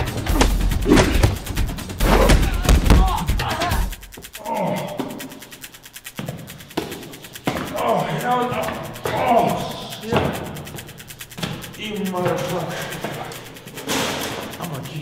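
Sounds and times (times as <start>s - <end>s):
sharp thuds: 0.0s - 3.4s
men groaning and grunting: 0.0s - 5.6s, 7.5s - 10.7s
film score music: 0.0s - 8.0s.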